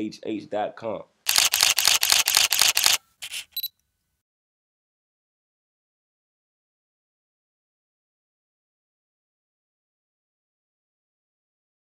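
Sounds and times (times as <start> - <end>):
camera shutter clicks: 1.3 - 3.7.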